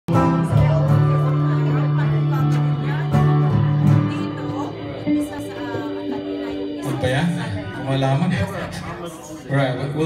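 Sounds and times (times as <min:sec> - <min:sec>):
low keyboard chords: 0:00.1 - 0:09.2
guitar: 0:00.1 - 0:10.0
live band playing: 0:00.1 - 0:10.0.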